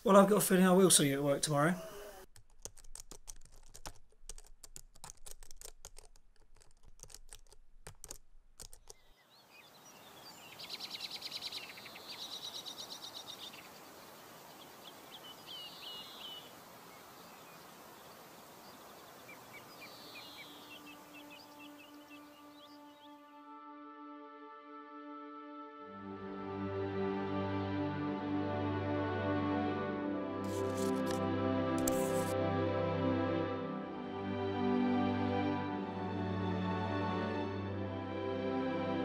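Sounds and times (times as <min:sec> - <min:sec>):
quick irregular clicking and tapping: 0:02.3 - 0:09.1
small birds chirping: 0:08.7 - 0:23.2
quiet music with held notes: 0:20.0 - 0:39.0.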